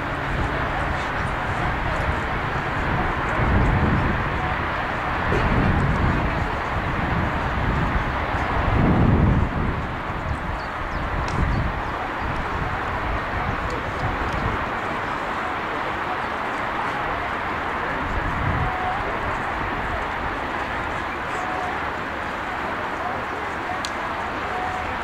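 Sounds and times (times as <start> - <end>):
steady outdoor hiss: 0.0 - 25.0
wind buffeting microphone: 0.0 - 25.0.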